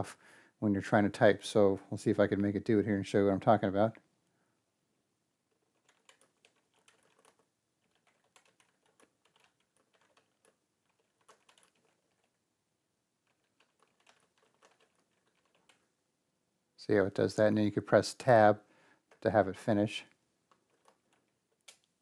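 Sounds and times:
computer keyboard typing: 0:05.5 - 0:12.4, 0:13.2 - 0:15.9, 0:20.5 - 0:22.0.

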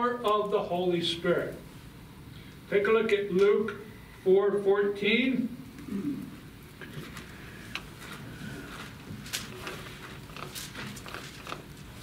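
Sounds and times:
thin book pages turning: 0:08.8 - 0:12.0.

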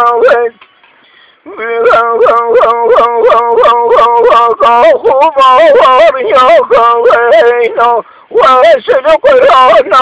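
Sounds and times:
man singing wailing line: 0:00.0 - 0:00.6, 0:01.5 - 0:10.0.

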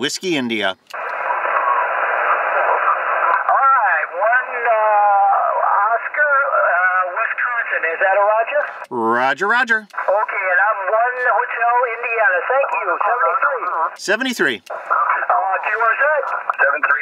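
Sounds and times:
radio speaker hissing: 0:00.9 - 0:08.9, 0:09.9 - 0:14.0, 0:14.7 - 0:17.0
thin voice over radio: 0:14.8 - 0:17.0.

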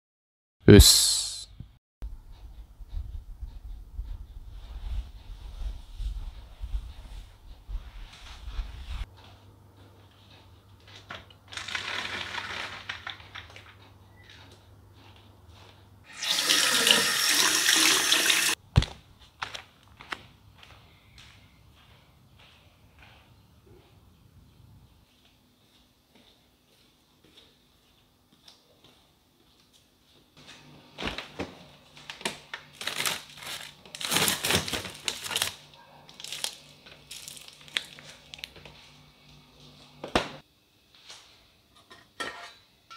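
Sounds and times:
water running from tap into sink: 0:16.1 - 0:18.6
plastic bag rustling: 0:32.2 - 0:38.6.

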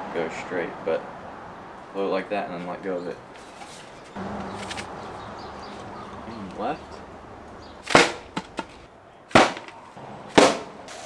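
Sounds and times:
spear smacking plastic bottle: 0:07.8 - 0:10.7.

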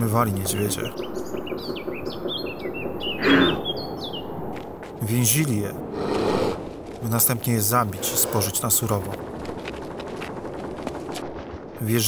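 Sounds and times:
small birds chirping: 0:00.0 - 0:09.4.

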